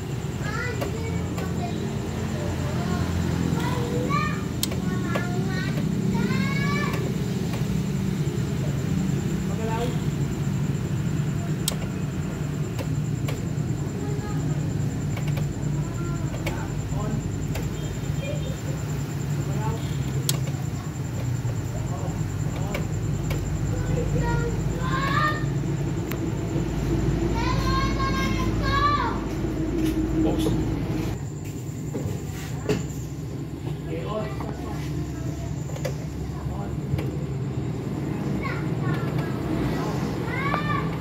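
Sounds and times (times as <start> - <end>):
children's voices calling: 0.0 - 10.2, 11.3 - 31.2, 33.6 - 41.0.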